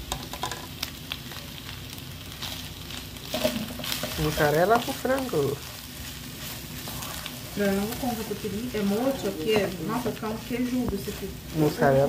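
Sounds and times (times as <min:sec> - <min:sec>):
food sizzling in a frying pan: 0:00.0 - 0:12.0
spatula scraping pan: 0:05.6 - 0:12.0.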